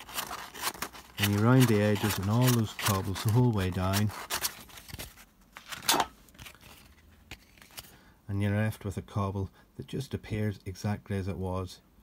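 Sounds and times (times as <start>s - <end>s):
sandpaper rubbing plastic: 0.0s - 4.8s.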